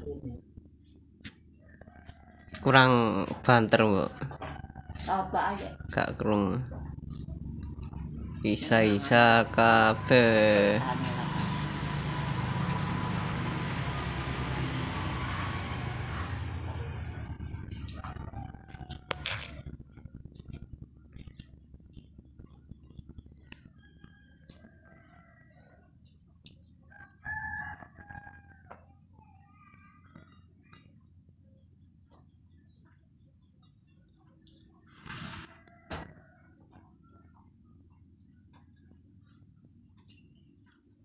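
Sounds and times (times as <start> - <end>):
engine running steadily: 4.2 - 24.0
rooster crowing: 8.5 - 19.7, 26.9 - 28.8.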